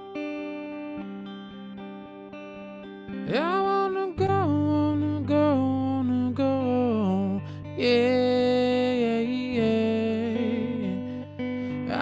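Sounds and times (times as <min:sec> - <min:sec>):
electric guitar chords: 0:00.0 - 0:12.0
man singing: 0:03.3 - 0:12.0.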